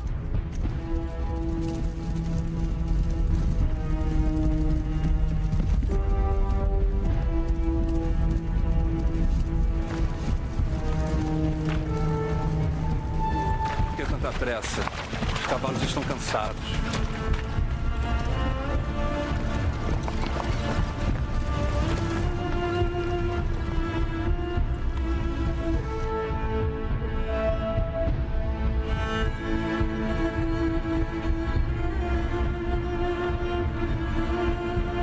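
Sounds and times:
cavalry horses hoofbeats: 0.0 - 35.0
soundtrack music with held notes: 0.0 - 35.0.

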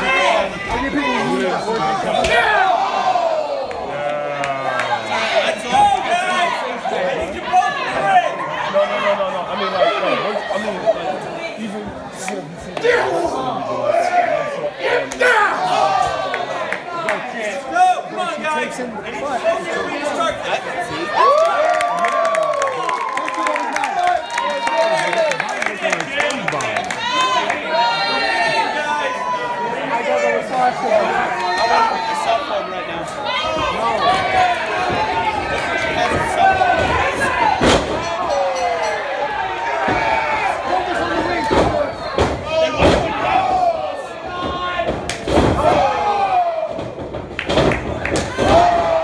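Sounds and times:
crowd cheering: 0.0 - 11.1, 19.7 - 49.0.

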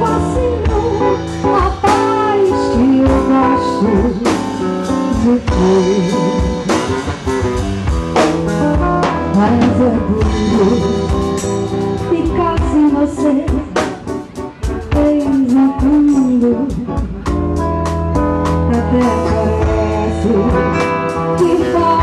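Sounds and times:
woman singing into microphone: 0.0 - 7.1, 9.0 - 14.1, 14.8 - 17.4, 18.4 - 22.0
drum kit beat: 0.0 - 22.0.

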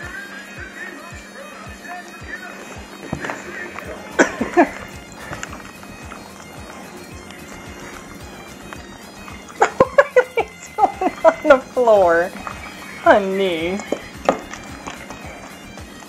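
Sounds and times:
bagpipe music: 0.0 - 16.0
steady drum beat: 1.1 - 16.0.

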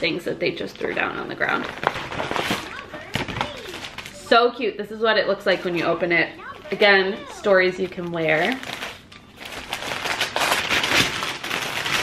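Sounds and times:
stiff paper mailer tearing and rustling: 1.0 - 4.3, 5.5 - 12.0.

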